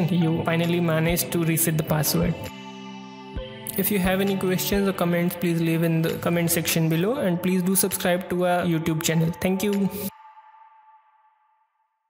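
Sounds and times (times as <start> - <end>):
person speaking: 0.0 - 2.6, 3.6 - 10.1.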